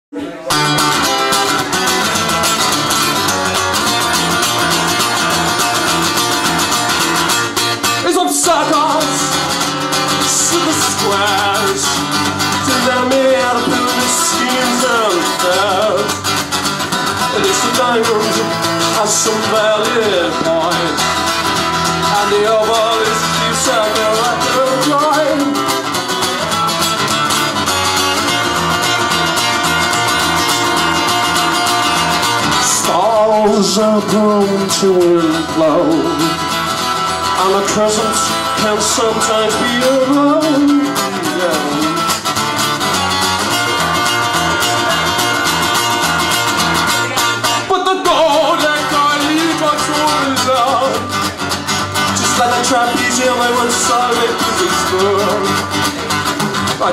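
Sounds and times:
guitar: 0.0s - 56.9s
person singing: 0.1s - 27.1s, 28.2s - 56.9s
live band playing: 0.2s - 56.9s.

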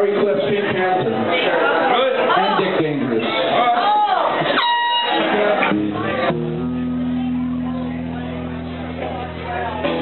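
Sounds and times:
electric guitar high note: 4.6s - 10.0s
low bass notes: 5.6s - 10.0s.

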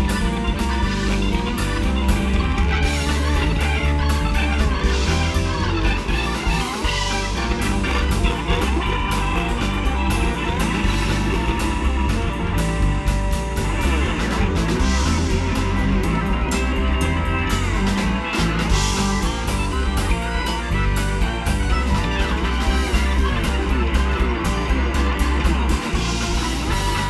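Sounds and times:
bass: 0.0s - 27.0s
drum kit: 0.0s - 27.0s
electric guitar: 0.0s - 27.0s
organ: 0.0s - 27.0s.

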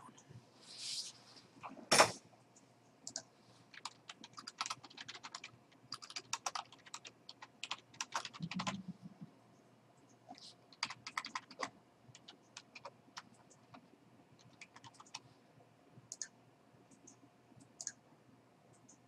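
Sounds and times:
typing on computer keyboard: 3.1s - 8.9s, 10.7s - 15.2s.

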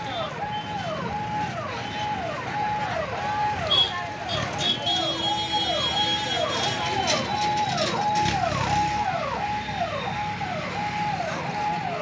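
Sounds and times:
electronic vehicle siren: 0.0s - 12.0s
engines and traffic rumble: 0.0s - 12.0s.

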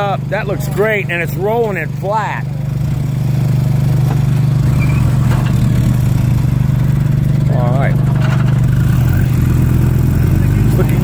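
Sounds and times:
tractor engine running under load: 0.0s - 11.0s.

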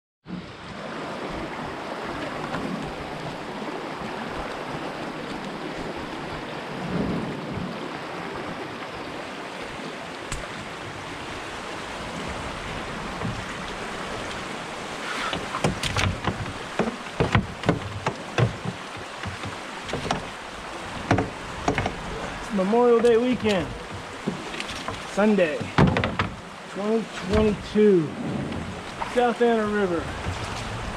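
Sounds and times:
floodwater rushing: 0.3s - 30.9s
sharp knocks: 15.2s - 20.4s, 21.0s - 22.0s, 23.4s - 26.4s.

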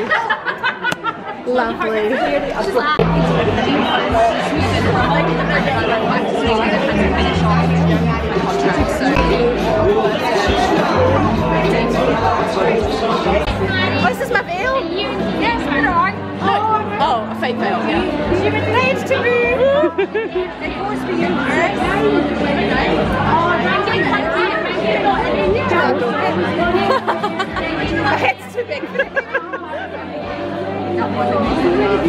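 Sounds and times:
many voices chattering: 0.0s - 32.0s
background music with bass line: 3.0s - 24.3s.

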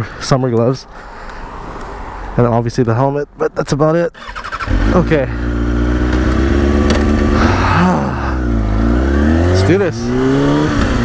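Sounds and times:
motorcycle engine revving: 4.2s - 11.0s.

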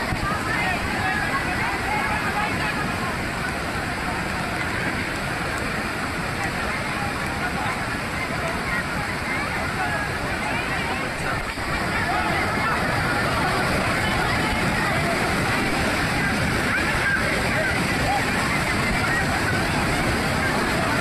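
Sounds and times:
faint voices: 0.0s - 21.0s
floodwater rushing down waterfall: 0.0s - 21.0s.

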